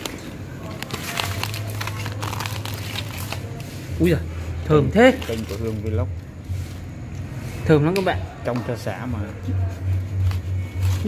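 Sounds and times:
aluminium foil crinkling: 0:00.0 - 0:04.0, 0:04.9 - 0:06.0, 0:09.8 - 0:11.0.

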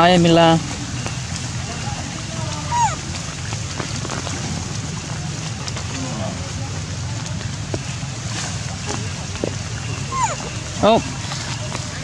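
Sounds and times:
baby monkey squeak: 0:02.7 - 0:03.0, 0:10.1 - 0:10.5.

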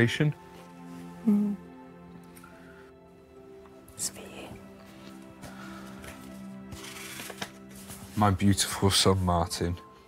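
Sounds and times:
soft background music: 0:00.0 - 0:10.0
paper rustling and crinkling: 0:06.0 - 0:08.5.

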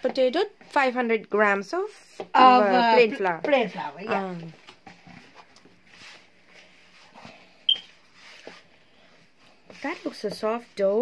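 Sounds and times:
brief high squeak: 0:07.7 - 0:07.9.

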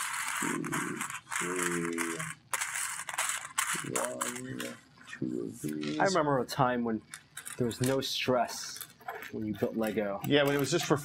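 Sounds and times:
low voice sounds: 0:00.4 - 0:02.3, 0:03.8 - 0:06.2.

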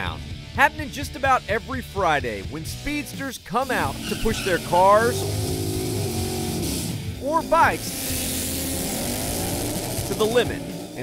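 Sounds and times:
car engine at high revs: 0:03.8 - 0:11.0
tyres spinning in burnout: 0:03.8 - 0:11.0.

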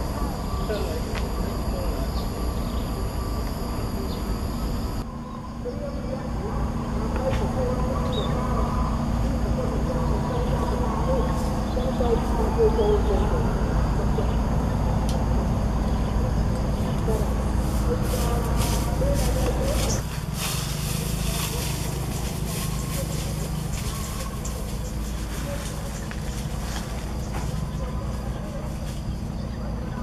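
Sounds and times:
grass rustling underfoot: 0:16.9 - 0:29.3.

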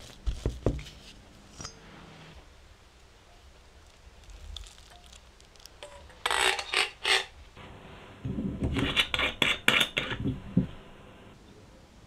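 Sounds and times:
bottle seal rubbing and crinkling: 0:03.8 - 0:07.3.

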